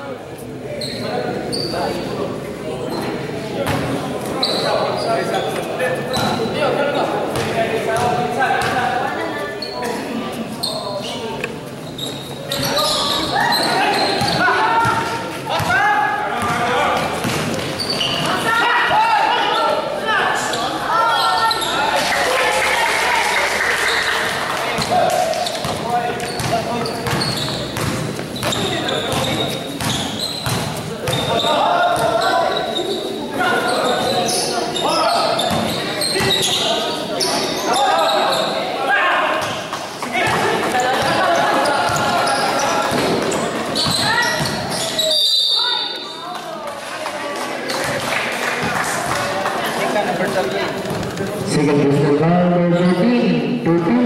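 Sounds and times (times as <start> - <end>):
basketball bouncing on court: 7.3 - 8.9, 14.2 - 15.8, 16.4 - 18.4, 24.8 - 31.4, 41.9 - 44.8.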